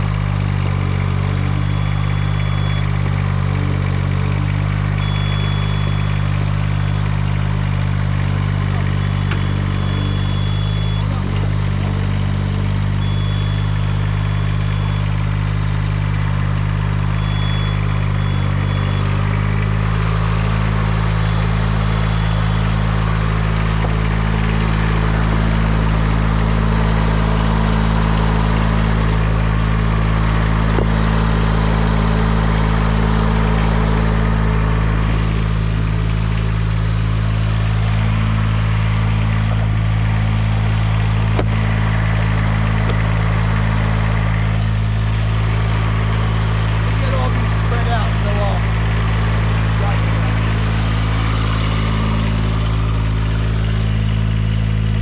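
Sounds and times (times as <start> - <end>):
lift engine running: 0.0 - 55.0.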